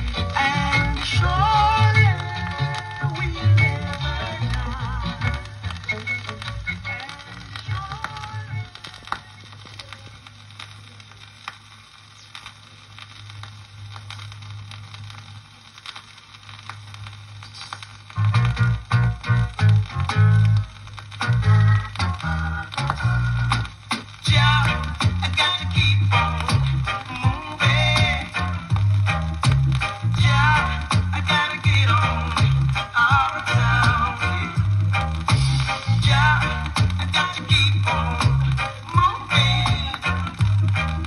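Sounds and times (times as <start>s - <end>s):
reggae music from vinyl: 0.0s - 41.0s
vinyl surface crackle: 0.0s - 41.0s
steady low bass tone: 18.1s - 41.0s.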